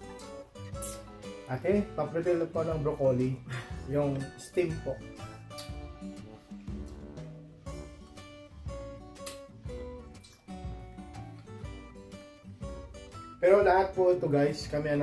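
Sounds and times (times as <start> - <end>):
acoustic guitar music: 0.0 - 15.0.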